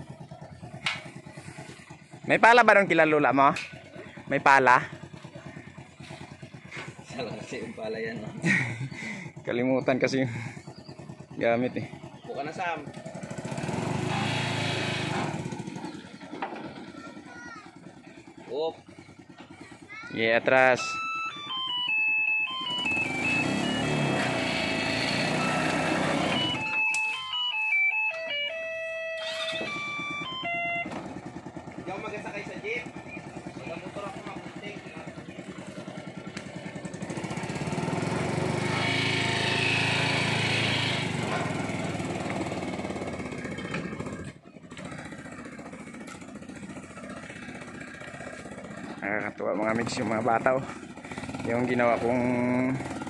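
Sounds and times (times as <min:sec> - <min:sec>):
small engine pulling away: 0:00.0 - 0:53.0
simple stepping melody: 0:20.8 - 0:24.4, 0:25.1 - 0:31.0.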